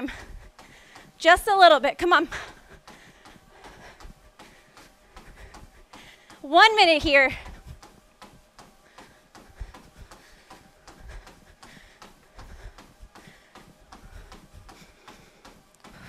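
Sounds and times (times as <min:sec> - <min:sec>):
footfalls on treadmill: 0:00.0 - 0:16.0.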